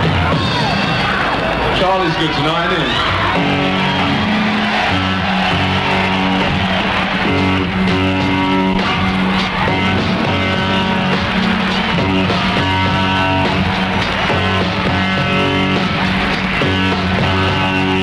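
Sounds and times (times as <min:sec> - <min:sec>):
rock band playing: 0:00.0 - 0:18.0.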